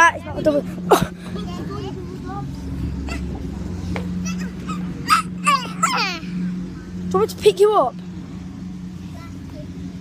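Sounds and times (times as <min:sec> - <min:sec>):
steady low hum: 0:00.0 - 0:10.0
dog yelping: 0:04.3 - 0:06.1.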